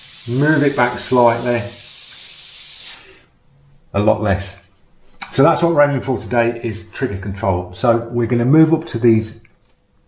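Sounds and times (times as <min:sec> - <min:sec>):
airbrush hissing: 0:00.0 - 0:03.2.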